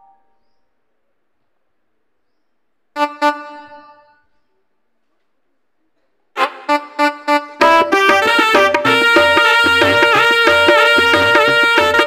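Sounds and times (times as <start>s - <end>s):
electronic keyboard chord: 7.6s - 12.0s
quick keyboard notes: 7.6s - 12.0s.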